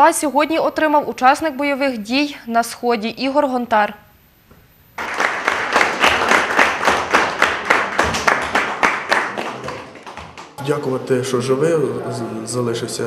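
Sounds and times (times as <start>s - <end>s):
group of people applauding: 5.0s - 11.0s.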